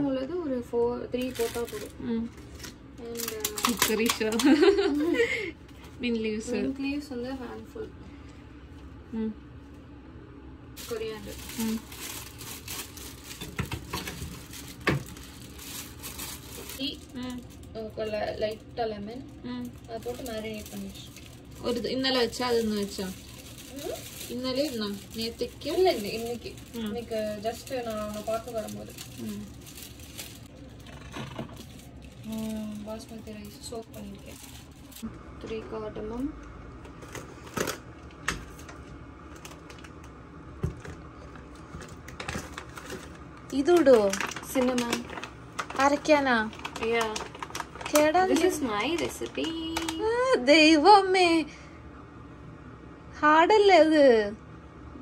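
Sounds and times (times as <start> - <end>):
plastic bag crinkling: 1.1 - 7.6, 10.8 - 35.1, 36.9 - 50.4.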